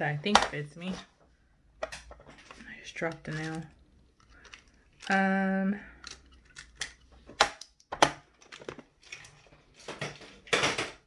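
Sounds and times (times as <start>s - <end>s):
plastic items clicking: 1.8s - 11.0s
plastic items rattling: 1.9s - 11.0s.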